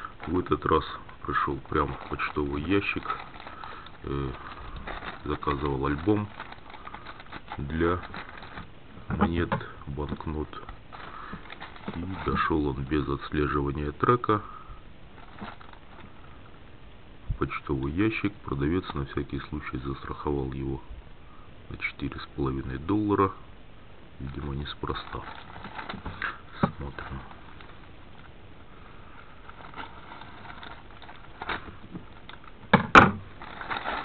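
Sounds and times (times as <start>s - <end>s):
plastic bag rustling: 0.0s - 14.0s, 15.0s - 16.5s, 24.2s - 34.0s
plastic crackle: 0.0s - 14.1s, 15.0s - 16.6s, 24.2s - 34.0s
low steady background hiss: 0.0s - 34.0s.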